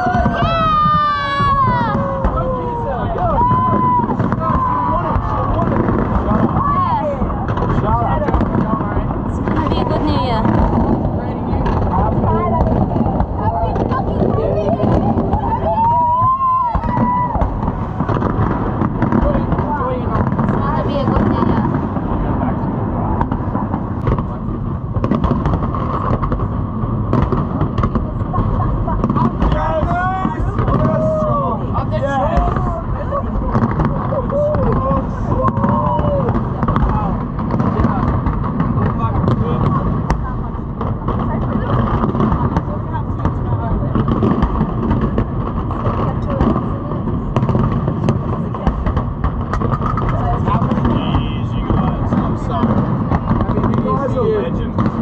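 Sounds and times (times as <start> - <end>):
crowd chatter: 0.0 - 55.0
fireworks bangs and crackles: 0.0 - 55.0.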